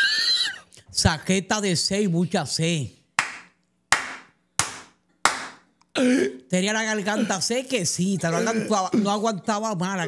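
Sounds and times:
man clapping hands: 0:03.2 - 0:05.6.

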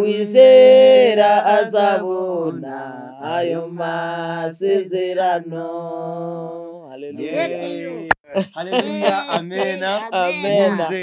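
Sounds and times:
person singing a slow hymn: 0:00.0 - 0:06.4, 0:07.2 - 0:08.1, 0:08.8 - 0:11.0.

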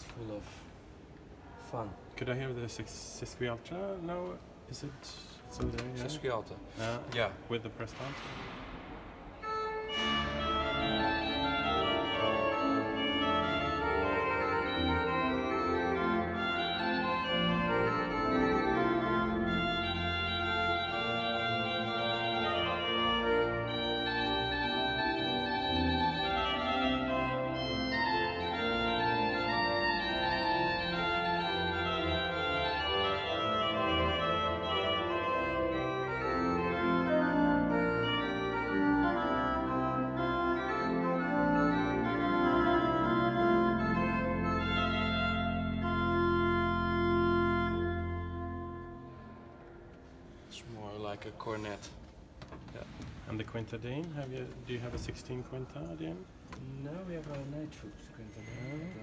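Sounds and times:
church pipe organ playing: 0:09.4 - 0:50.6.

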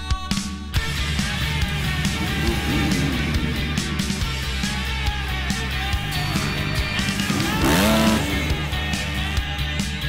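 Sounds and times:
rock music: 0:00.0 - 0:10.0
motorbike engine revving: 0:00.8 - 0:10.0.

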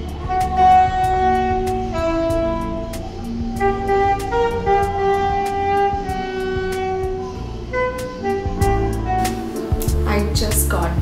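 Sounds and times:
saxophone sustained notes: 0:00.0 - 0:11.0.

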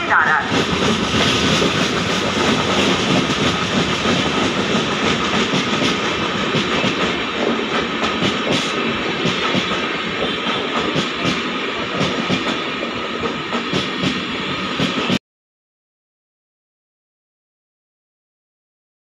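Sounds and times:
train rumbling past: 0:00.0 - 0:15.2.

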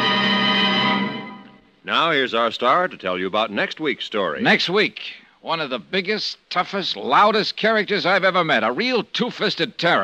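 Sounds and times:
held orchestral chord: 0:00.0 - 0:01.6
man announcing: 0:01.8 - 0:10.0.

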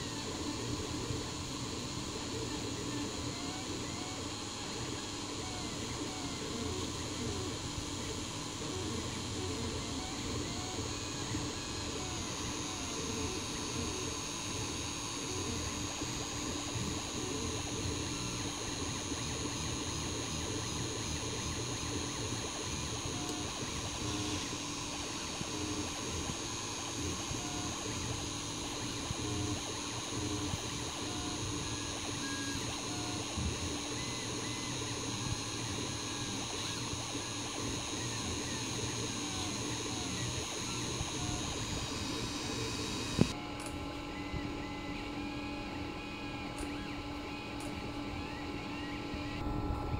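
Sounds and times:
printer steady whir: 0:00.0 - 0:49.9
stepper motor whining tones: 0:00.0 - 0:49.9
sharp click: 0:43.2 - 0:43.8, 0:46.6 - 0:46.8.

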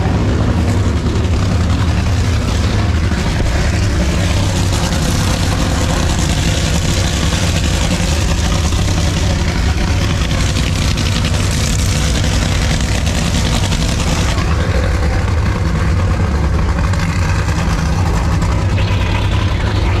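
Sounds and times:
low engine drone in cabin: 0:00.0 - 0:20.0.

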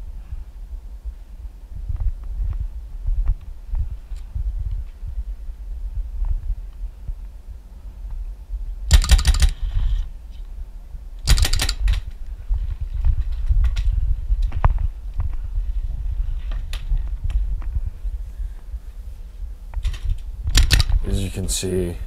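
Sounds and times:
paintball marker firing: 0:08.9 - 0:09.7, 0:20.5 - 0:21.0.

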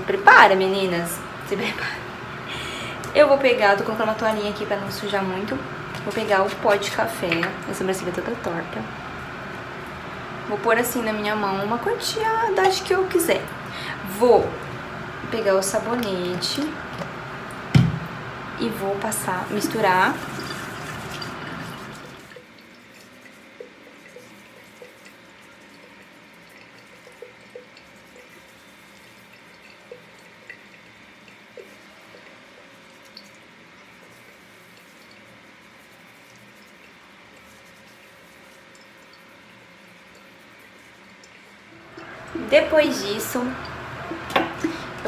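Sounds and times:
water running from sink tap: 0:00.0 - 0:45.0
faint water drips: 0:19.7 - 0:45.0.

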